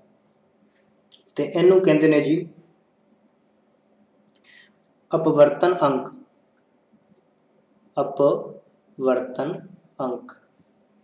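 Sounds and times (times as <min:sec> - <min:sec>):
man talking: 0:01.2 - 0:02.6, 0:05.1 - 0:06.2, 0:08.0 - 0:10.4.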